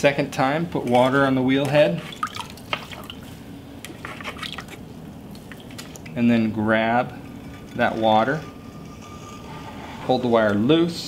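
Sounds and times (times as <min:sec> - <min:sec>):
low steady hum: 0:00.0 - 0:11.0
water dripping and splashing: 0:02.0 - 0:03.4, 0:04.3 - 0:06.2.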